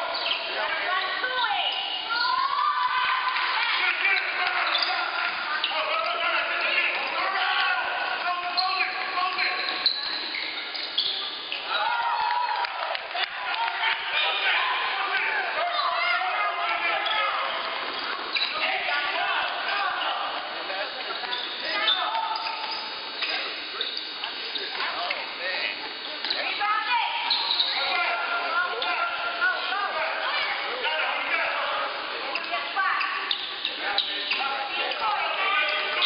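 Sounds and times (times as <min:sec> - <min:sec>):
murmur of voices: 0:00.0 - 0:36.0.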